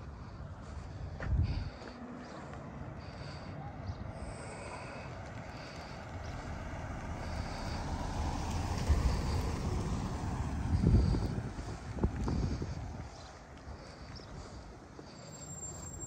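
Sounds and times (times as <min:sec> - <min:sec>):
wind buffeting microphone: 0:00.5 - 0:01.8, 0:05.2 - 0:14.9
car driving past: 0:01.7 - 0:13.3.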